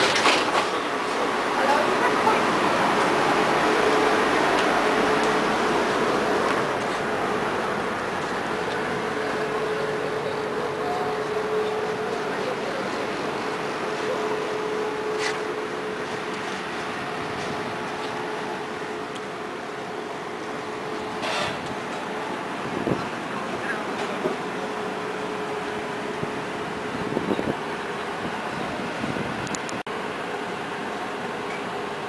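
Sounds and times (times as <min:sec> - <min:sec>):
street background noise: 0:00.0 - 0:32.0
tram equipment humming: 0:00.0 - 0:32.0.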